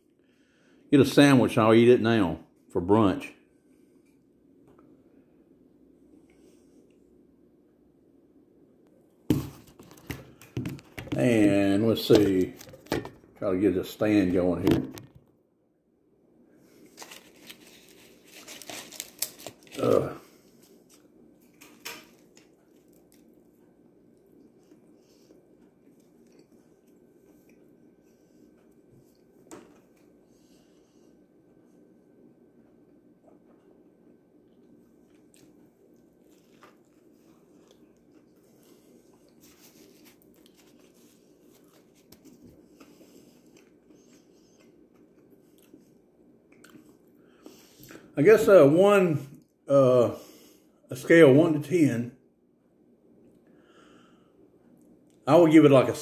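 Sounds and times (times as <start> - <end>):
faint high hum: 0.0 - 56.0.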